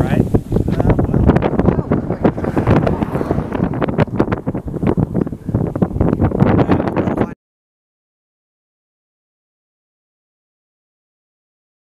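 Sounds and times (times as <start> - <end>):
gusty wind buffeting microphone: 0.0 - 7.4.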